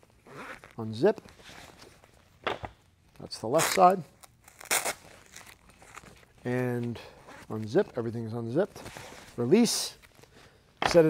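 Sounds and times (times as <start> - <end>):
fabric rustle: 0.1 - 2.4, 4.4 - 10.4.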